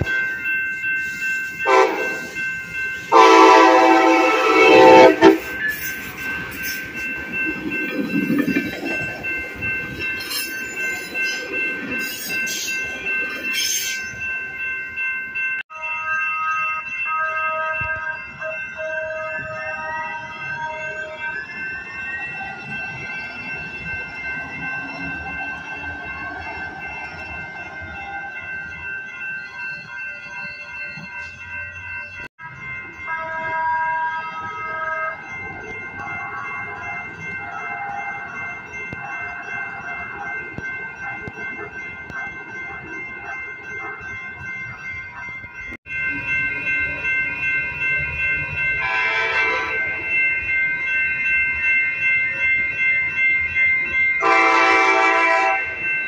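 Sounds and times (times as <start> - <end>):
crossing warning bells ringing: 0.0 - 56.0
light-rail cars whining: 0.0 - 56.0.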